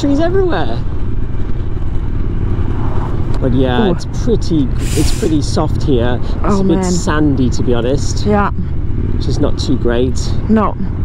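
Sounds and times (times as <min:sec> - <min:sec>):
motorcycle engine rumble: 0:00.0 - 0:11.0
truck passing by: 0:00.0 - 0:11.0
wind: 0:00.0 - 0:11.0.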